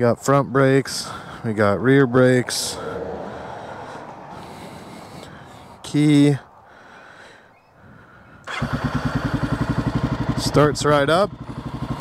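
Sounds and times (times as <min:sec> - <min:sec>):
motorcycle engine starting and idling: 0:08.4 - 0:12.0.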